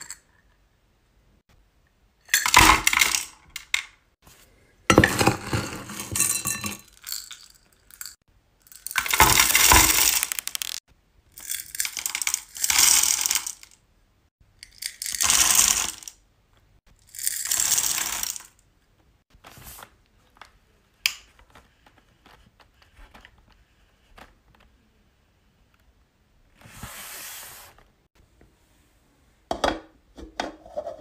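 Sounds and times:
wax beads rattling into metal pot: 2.3s - 3.8s, 5.0s - 10.8s, 11.4s - 13.8s, 14.6s - 16.2s, 17.0s - 18.6s.

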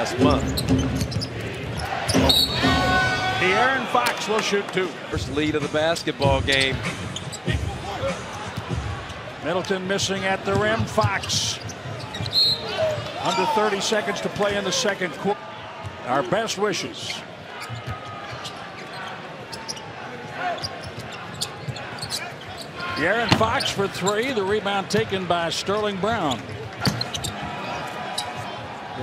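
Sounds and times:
murmur of crowd: 0.0s - 29.0s.

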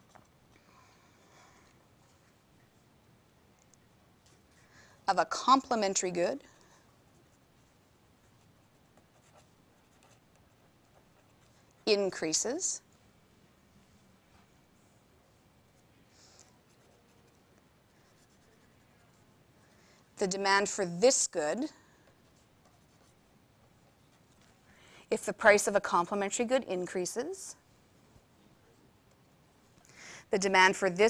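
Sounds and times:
felt-tip pen writing on paper: 8.2s - 11.7s, 16.7s - 19.2s.

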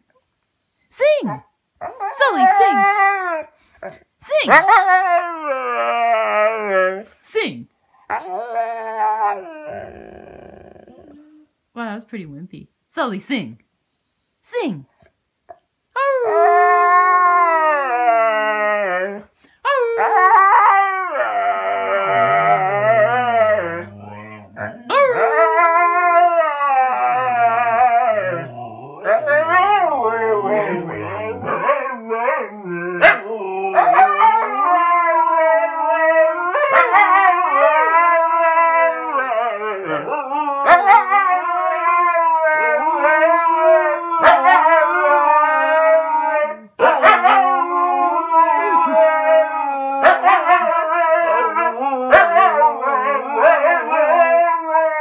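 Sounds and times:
dogs howling: 4.5s - 7.1s, 8.1s - 11.4s, 16.0s - 55.0s.

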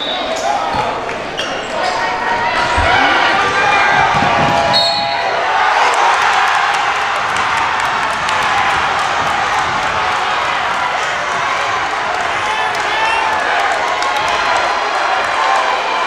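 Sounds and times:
sneaker squeaks: 0.0s - 3.1s
crowd cheering and clapping: 0.0s - 16.0s
many voices: 0.0s - 16.0s.

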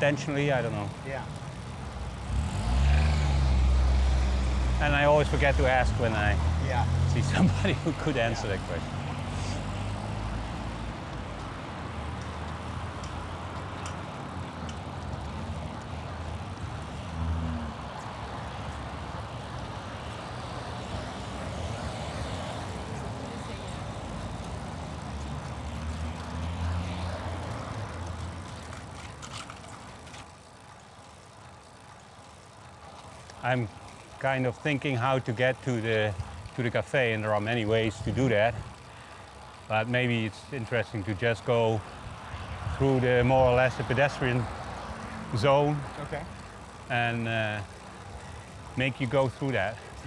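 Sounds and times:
car engines passing: 0.0s - 50.0s.

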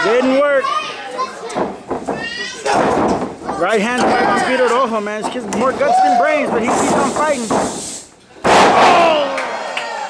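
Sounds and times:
crowd shouting: 8.5s - 10.0s.

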